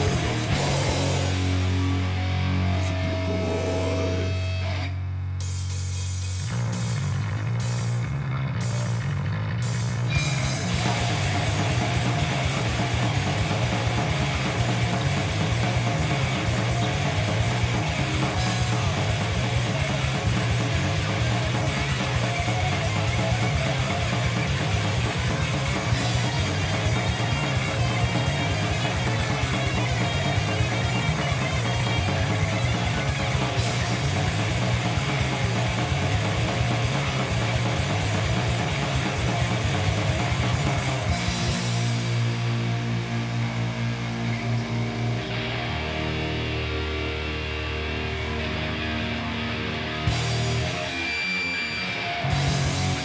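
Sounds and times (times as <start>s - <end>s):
heavy metal band playing live: 0.0s - 53.0s.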